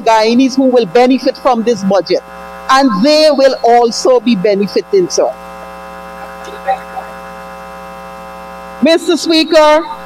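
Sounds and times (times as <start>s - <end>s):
woman speaking: 0.0s - 5.2s, 6.2s - 7.3s, 8.8s - 10.0s
electrical mains hum: 0.0s - 10.0s.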